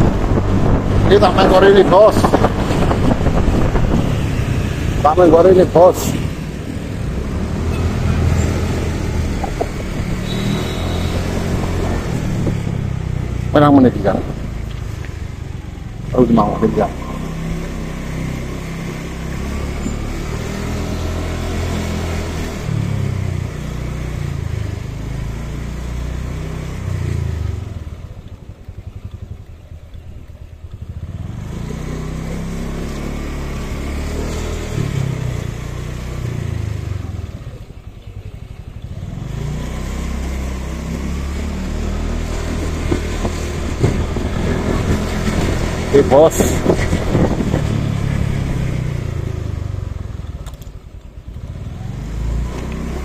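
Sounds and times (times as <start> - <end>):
motorcycle engine running: 6.6 - 20.1.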